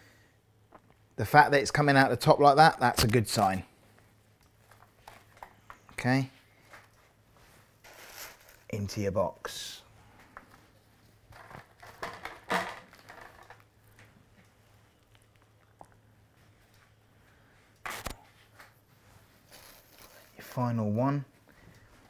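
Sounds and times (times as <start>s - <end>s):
low steady hum: 0.0s - 22.0s
soft paper rustling: 3.9s - 9.1s, 17.9s - 21.4s.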